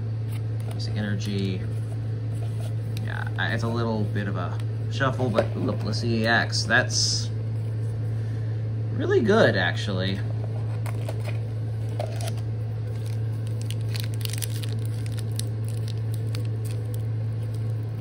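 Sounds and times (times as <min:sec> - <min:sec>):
steady low hum: 0:00.0 - 0:18.0
foil wrapper crinkling: 0:10.8 - 0:18.0.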